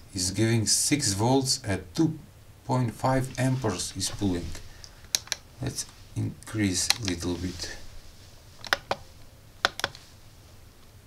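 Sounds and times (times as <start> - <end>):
rotary knob clicks: 5.1 - 5.4, 8.6 - 9.0.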